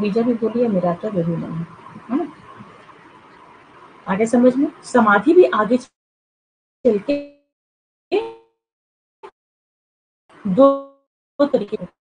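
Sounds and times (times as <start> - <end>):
woman speaking: 0.0 - 2.6, 4.0 - 5.9, 6.9 - 7.3, 8.1 - 8.4, 10.4 - 10.8, 11.4 - 12.0.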